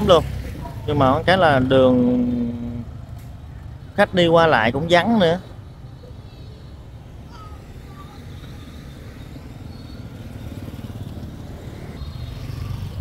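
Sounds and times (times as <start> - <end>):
motorbike engines passing: 0.0 - 13.0.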